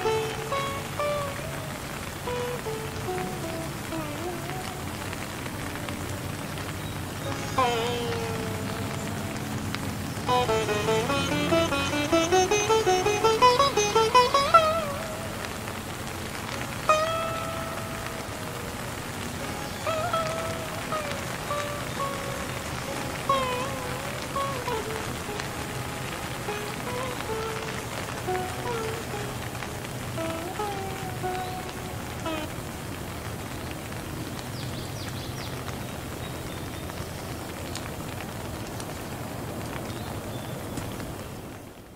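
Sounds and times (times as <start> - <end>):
slow sitar melody: 0.0 - 38.2
steady rain: 0.0 - 41.9.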